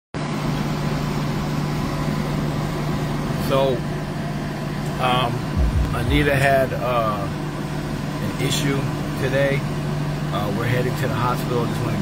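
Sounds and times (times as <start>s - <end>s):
idling vehicles hum: 0.2s - 12.0s
air noise rush: 5.3s - 8.2s.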